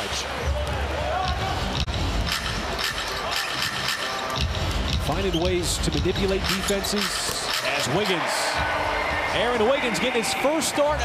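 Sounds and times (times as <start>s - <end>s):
crowd noise: 0.0s - 11.0s
music over arena speakers: 0.0s - 11.0s
shoe squeaks and knocks on court: 5.0s - 7.9s.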